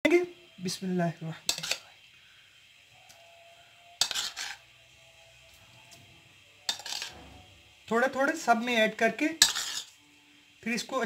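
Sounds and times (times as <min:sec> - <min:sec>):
metal spoon clinking against bowls: 0:01.5 - 0:01.8, 0:06.7 - 0:07.1, 0:09.4 - 0:09.9.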